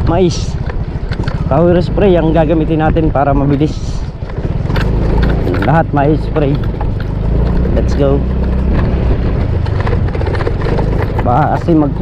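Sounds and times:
motorcycle engine rumble: 0.0s - 12.0s.

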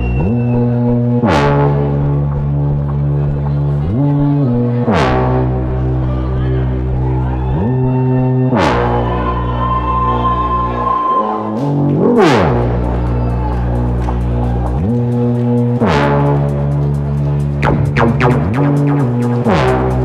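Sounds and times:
sliding synth bass notes: 0.0s - 20.0s
rising synth sweeps: 17.6s - 20.0s.

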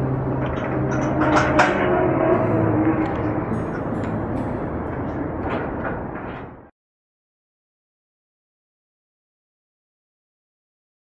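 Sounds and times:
outdoor rumbling: 0.0s - 6.7s.

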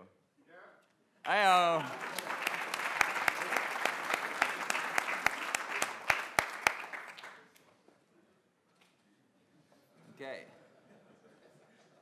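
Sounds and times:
audience applauding: 1.3s - 7.5s
sharp close claps: 1.4s - 7.4s.

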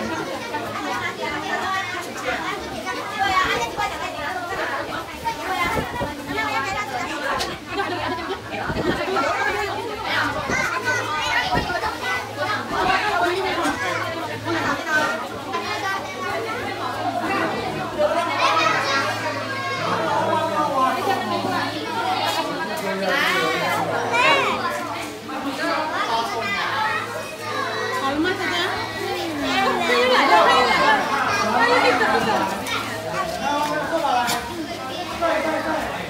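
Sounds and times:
children and adults talking: 0.0s - 36.0s.

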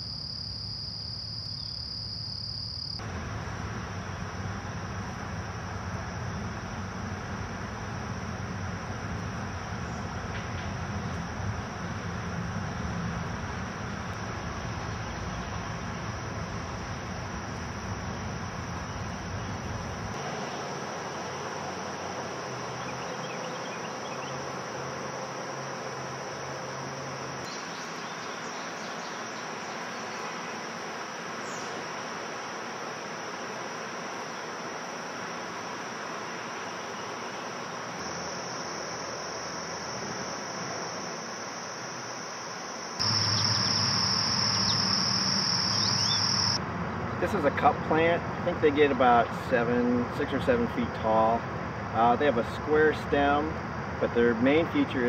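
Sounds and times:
crickets chirring: 0.0s - 55.0s.

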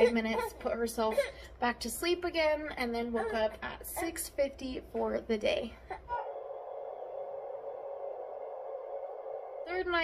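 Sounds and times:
steady mid-pitched hum: 0.0s - 10.0s.

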